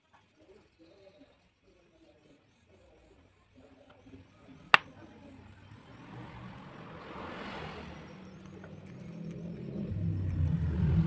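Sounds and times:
low engine drone: 9.0 - 11.0.

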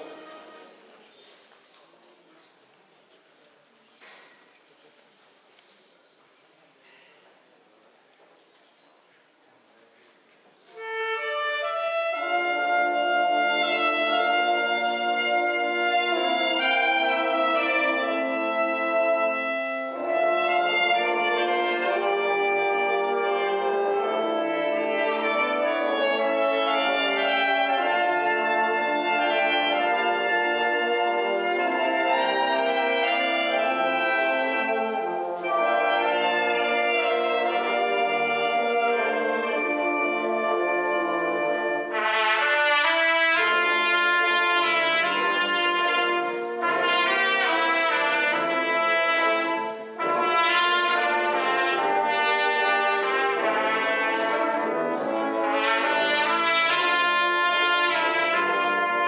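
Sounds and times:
brass band playing: 0.0 - 0.9, 10.7 - 59.0
solo trumpet: 10.6 - 59.0.

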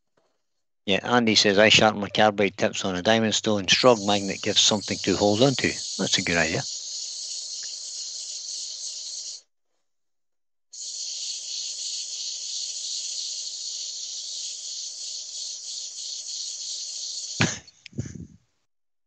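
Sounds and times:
sandpaper hissing on spinning wood: 3.7 - 9.4, 10.8 - 17.6.

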